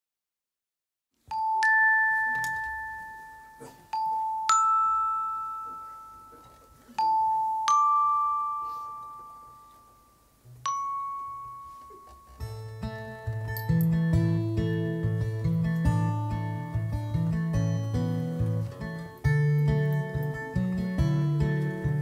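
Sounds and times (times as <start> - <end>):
bell-like single notes: 1.3 - 14.8.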